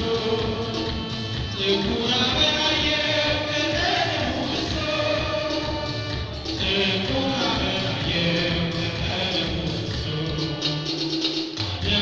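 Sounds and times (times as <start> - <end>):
group of voices singing: 0.0 - 12.0
steady low drum beat: 0.0 - 12.0.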